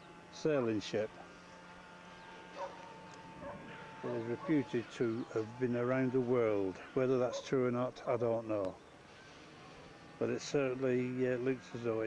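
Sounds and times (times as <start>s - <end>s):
steady thin whine: 0.0s - 12.0s.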